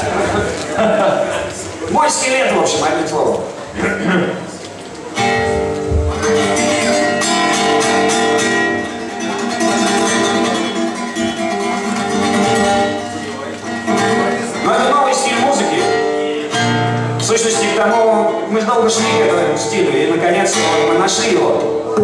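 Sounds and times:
acoustic guitar strumming: 0.0s - 22.0s
man's voice: 14.0s - 16.6s, 17.2s - 22.0s.

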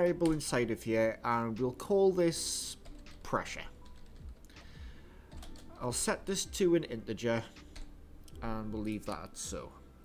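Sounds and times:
computer keyboard keystrokes: 5.3s - 5.7s.

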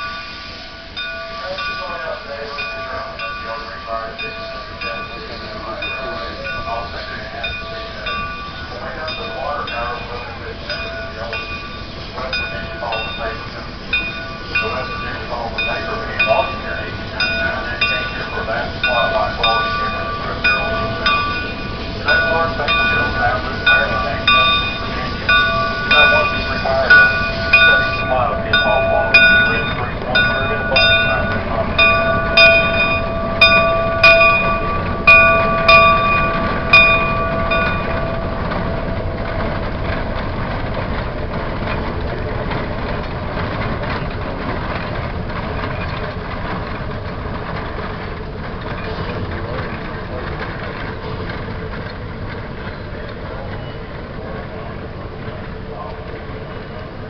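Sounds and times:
steam locomotive bell ringing: 0.0s - 57.0s
steam locomotive running: 0.0s - 57.0s.

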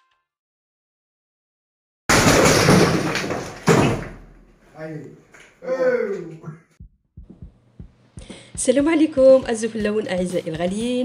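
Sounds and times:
breaking masonry and falling debris: 2.1s - 4.6s
sledgehammer striking brick wall: 2.1s - 4.6s.

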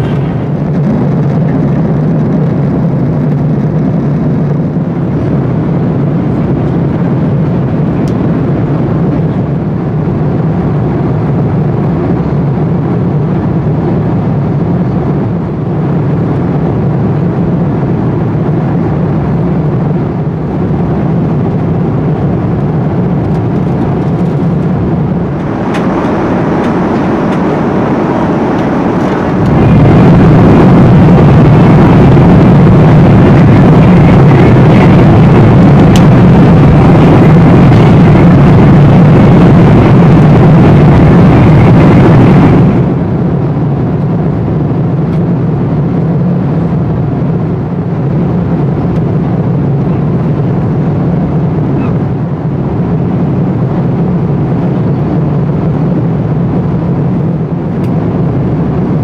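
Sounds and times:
airliner cabin engine rush: 0.0s - 59.0s
low hum: 0.0s - 59.0s.

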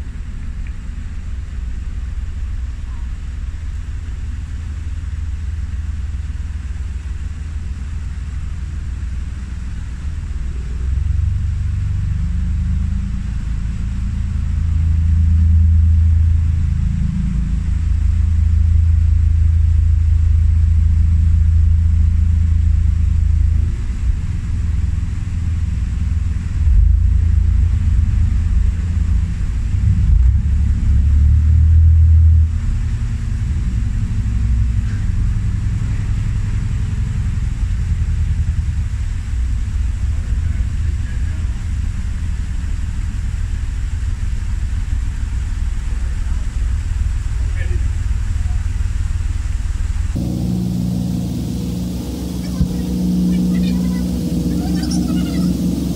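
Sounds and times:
diesel engine running: 0.0s - 55.9s.

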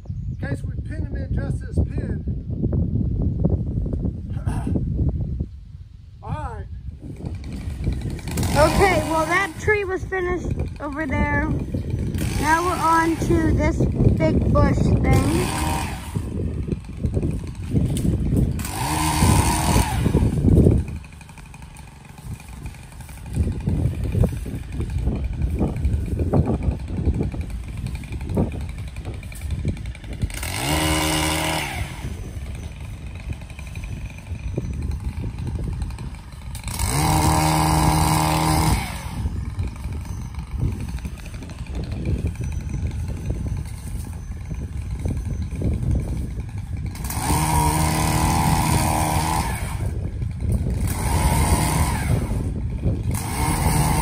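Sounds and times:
pole saw engine revving: 7.0s - 54.0s.

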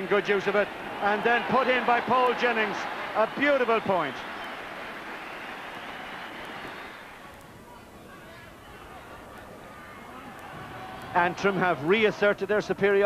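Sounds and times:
stadium crowd cheering: 0.0s - 13.0s.

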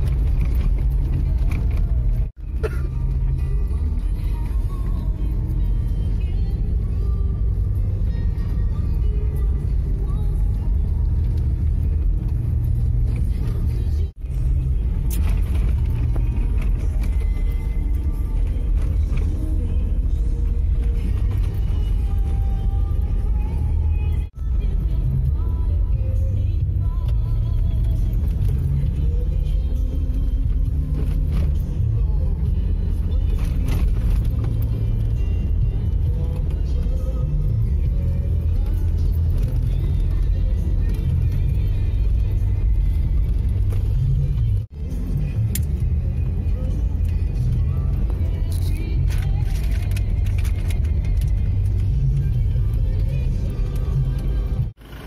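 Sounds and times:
car road and engine rumble: 0.0s - 55.0s
music playing: 0.0s - 55.0s.

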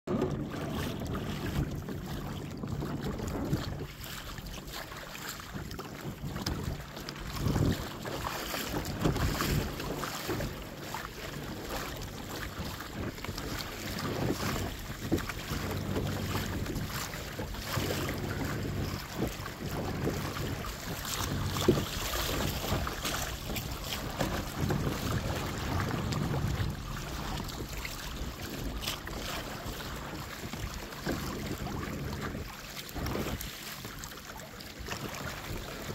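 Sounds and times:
water splashing against hull: 0.0s - 35.9s
wind buffeting microphone: 0.1s - 35.9s.

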